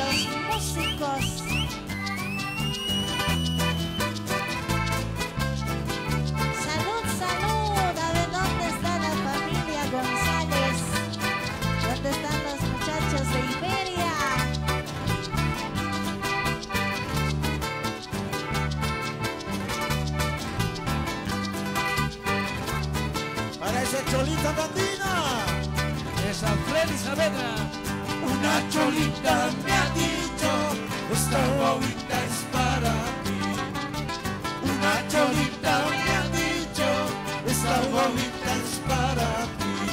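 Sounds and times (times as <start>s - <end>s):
acoustic guitar: 0.0s - 39.9s
live band playing dance music: 0.0s - 39.9s
maracas shaking: 0.0s - 39.9s
repeating bass line: 0.0s - 39.9s.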